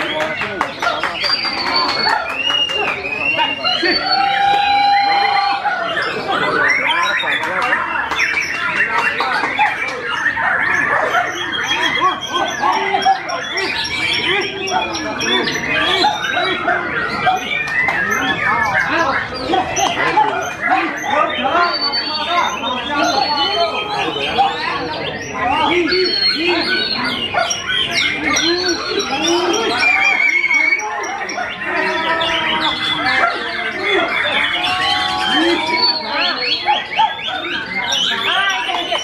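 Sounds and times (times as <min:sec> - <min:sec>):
birds singing whistled phrases: 0:00.0 - 0:39.0
people talking: 0:00.0 - 0:39.0
voices: 0:00.0 - 0:39.0.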